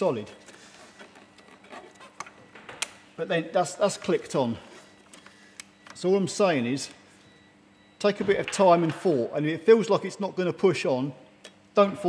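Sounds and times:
gloved hands rubbing: 0.5s - 2.4s.

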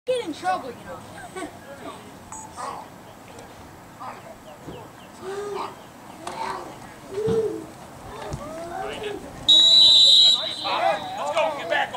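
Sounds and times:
voices calling out: 0.1s - 11.9s
whistle blast: 9.5s - 11.3s.

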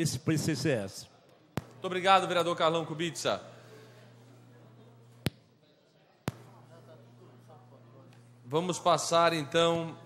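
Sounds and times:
steady background hum: 0.0s - 10.0s.

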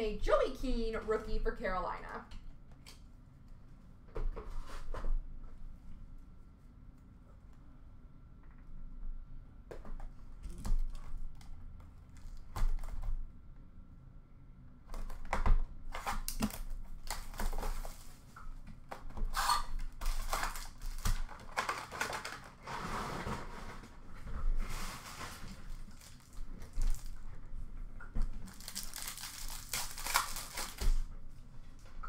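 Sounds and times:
foil wrappers tearing and crinkling: 15.9s - 18.3s, 19.2s - 23.5s, 24.7s - 27.2s, 28.4s - 31.1s.

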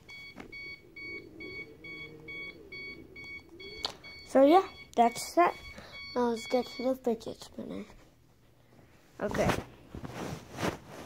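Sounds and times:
faint wavering hum: 0.0s - 7.2s.

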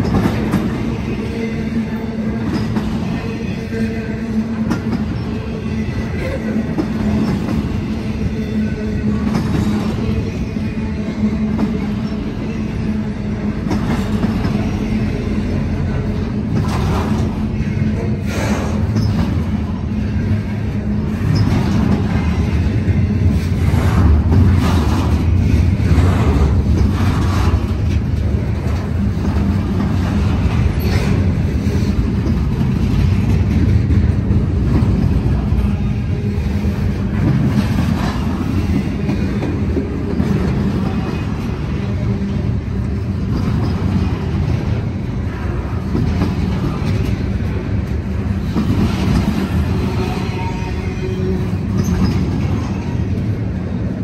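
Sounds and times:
train wheels rumbling on rail: 0.0s - 54.0s.

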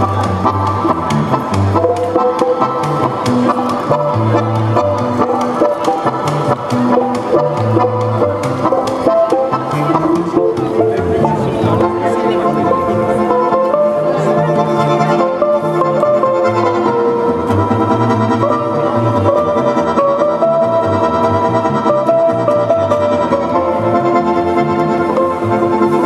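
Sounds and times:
accordion playing chords: 0.0s - 26.0s
balalaika strumming: 0.0s - 26.0s
bass balalaika plucked notes: 0.0s - 26.0s.

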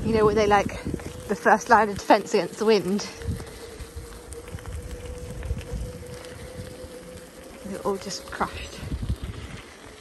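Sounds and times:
electric motor whine: 0.0s - 10.0s
tyres on gravel: 0.0s - 10.0s
wind buffeting microphone: 0.0s - 10.0s.

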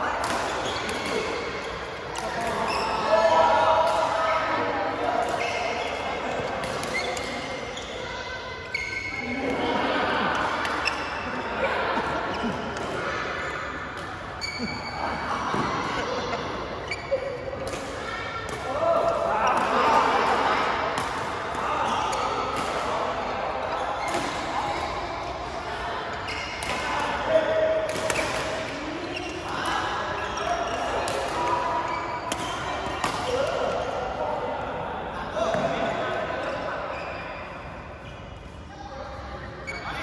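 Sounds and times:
players' voices: 0.0s - 40.0s
rackets hitting shuttlecock: 0.2s - 3.1s, 5.2s - 7.6s, 17.5s - 21.6s, 26.4s - 29.8s, 30.6s - 31.6s, 32.2s - 33.8s.

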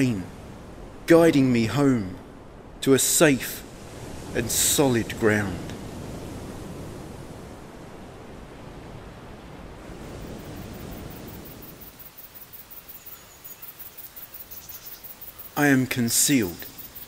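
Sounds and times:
rain and surf hiss: 0.0s - 17.0s
faint rapid pulsing chirr: 10.0s - 17.0s.

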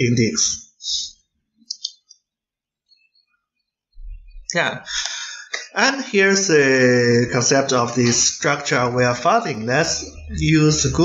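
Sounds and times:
sharp clicks: 1.7s - 2.1s.

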